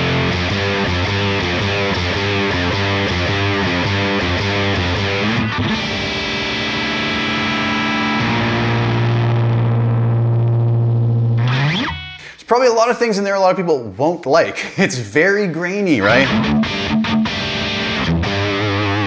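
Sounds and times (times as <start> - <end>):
distorted electric guitar: 0.0 - 12.3, 16.0 - 19.0.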